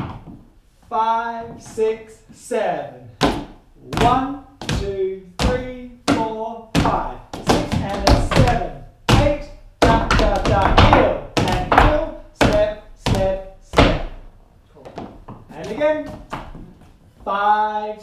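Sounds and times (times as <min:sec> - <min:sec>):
tap shoes on wooden floor: 0:03.2 - 0:14.2, 0:14.8 - 0:17.0.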